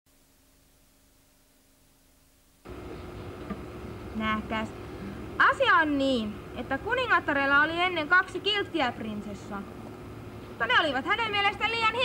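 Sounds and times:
background hiss: 0:00.1 - 0:12.0
faint hum: 0:00.1 - 0:12.0.

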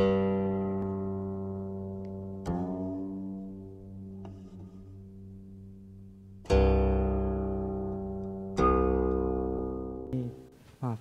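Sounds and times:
low plucked string note ringing: 0:00.0 - 0:10.5.

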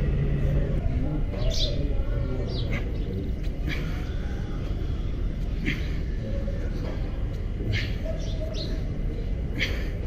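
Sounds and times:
birds chirping: 0:00.0 - 0:10.0
steady low rumble: 0:00.0 - 0:10.0.

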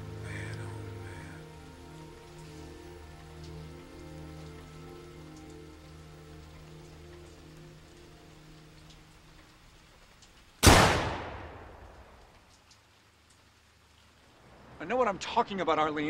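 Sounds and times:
soft low film score notes: 0:00.0 - 0:16.0
steady rain on a surface: 0:00.0 - 0:16.0.

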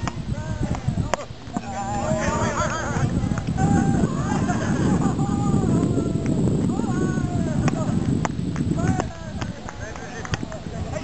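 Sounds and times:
low rumble: 0:00.0 - 0:09.5
voices calling: 0:00.0 - 0:11.0.

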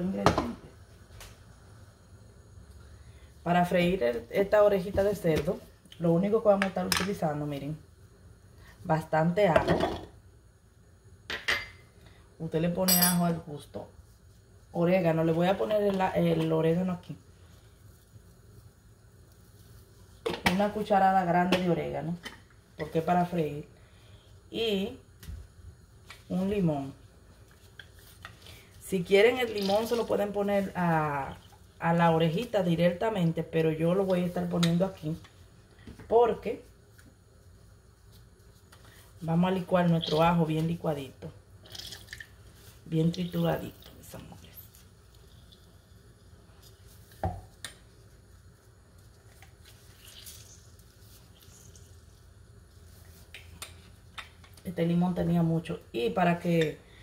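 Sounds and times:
juice dripping into plastic cup: 0:41.6 - 0:42.5, 0:49.0 - 0:52.1.

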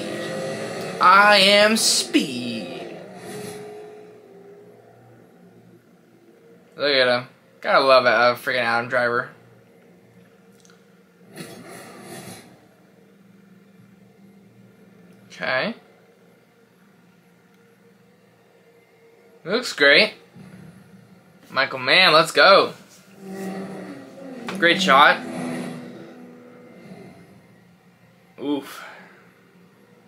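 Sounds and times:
racing car engine passing: 0:00.0 - 0:06.8, 0:23.1 - 0:27.8
faint steady hum: 0:00.0 - 0:30.0.

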